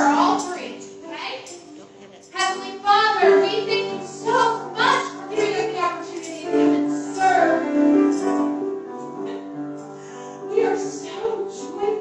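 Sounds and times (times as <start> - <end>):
woman singing worship song: 0.0 - 7.7, 10.5 - 12.0
piano accompaniment: 0.0 - 12.0.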